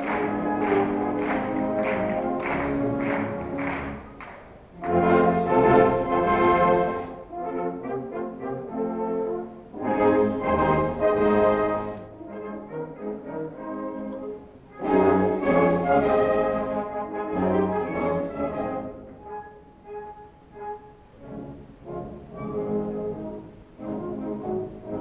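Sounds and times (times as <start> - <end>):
wind band of brass and woodwinds: 0.0 - 25.0.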